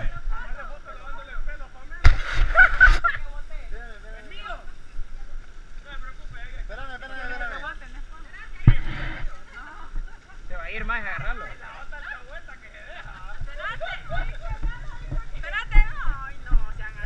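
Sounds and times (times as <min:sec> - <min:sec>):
people talking: 0:00.0 - 0:17.0
sharp knock: 0:02.0 - 0:03.0
loud rushing rustling noise: 0:02.0 - 0:03.2.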